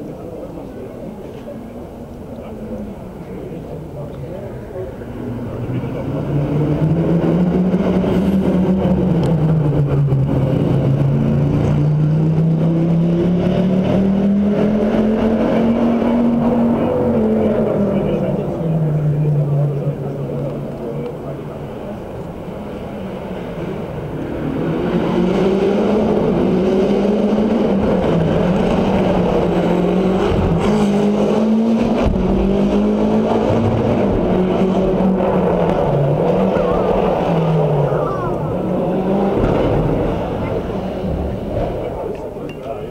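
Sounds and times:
rally car engines revving: 0.0 - 42.9.

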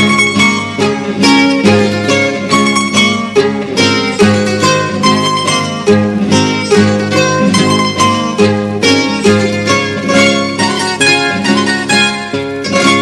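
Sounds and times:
plucked string ensemble: 0.0 - 13.0
strummed guitar chords: 0.0 - 13.0.

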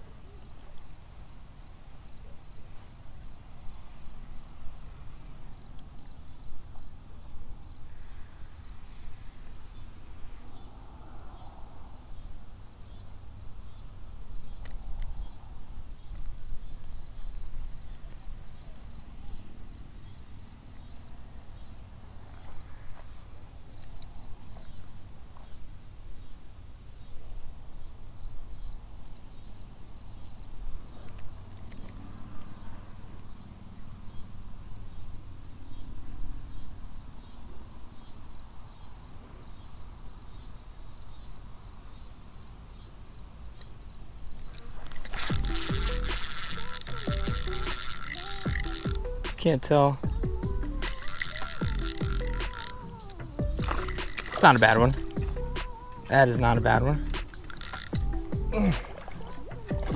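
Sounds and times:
insects chirping: 0.0 - 59.9
insect rattling burst: 45.0 - 59.9.

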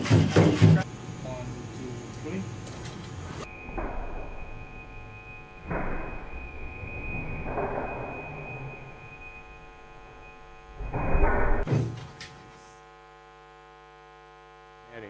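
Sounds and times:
electrical hum: 0.0 - 15.0
robot landing thump: 10.8 - 12.0.

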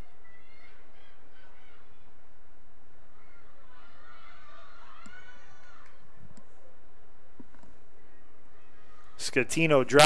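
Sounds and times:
distant players shouting: 3.0 - 6.3.

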